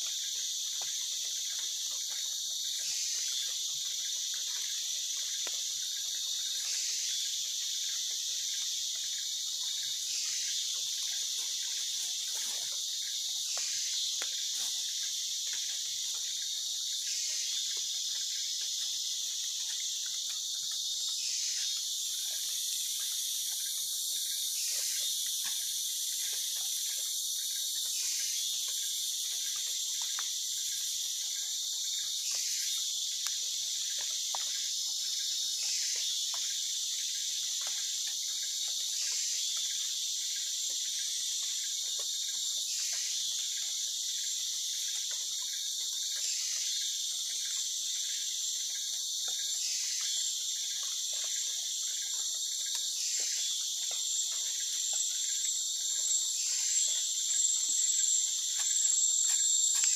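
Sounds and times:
high-pitched insect chorus: 0:00.0 - 0:59.9.

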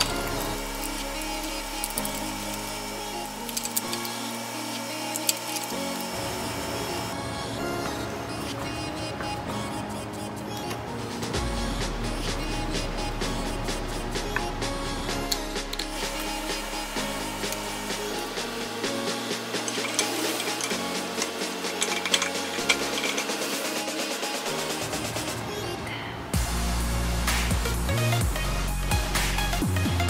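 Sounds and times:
electronic music with steady beat: 0:00.0 - 0:25.6, 0:26.3 - 0:30.0.

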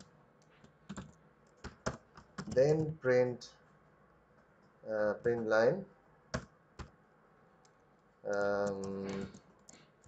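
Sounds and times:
keyboard typing clicks: 0:07.6 - 0:09.8.

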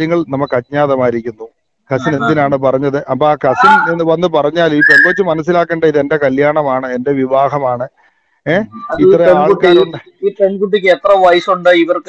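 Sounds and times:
man talking: 0:00.0 - 0:12.0
high whistle-like tone: 0:04.8 - 0:05.2.

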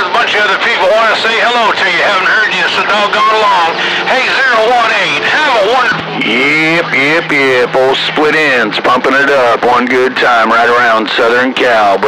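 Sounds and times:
man talking over radio speaker: 0:00.0 - 0:12.0
radio hiss: 0:00.0 - 0:12.0.

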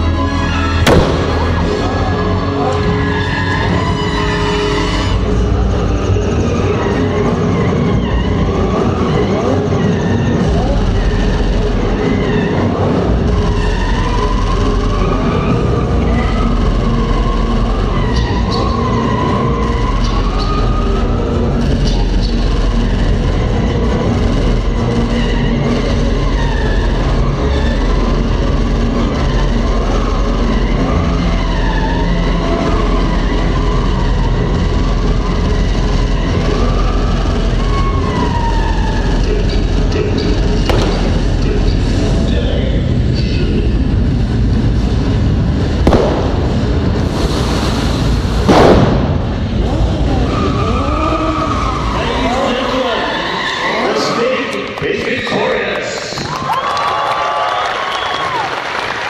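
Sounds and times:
tyres squealing: 0:00.0 - 0:43.3, 0:49.0 - 0:55.7
car engines revving: 0:00.0 - 0:54.9.

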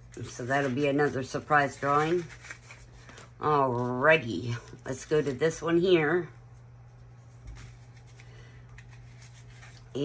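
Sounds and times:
steady low hum: 0:00.0 - 0:10.0
plastic pouch handled: 0:00.1 - 0:03.9
paper money rustling: 0:00.1 - 0:05.6, 0:07.2 - 0:10.0.

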